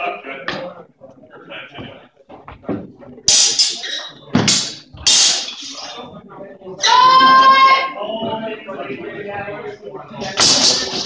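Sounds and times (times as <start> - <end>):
feet shuffling: 1.3 - 3.3
swords clashing: 3.3 - 3.8, 4.4 - 5.9, 10.4 - 11.0.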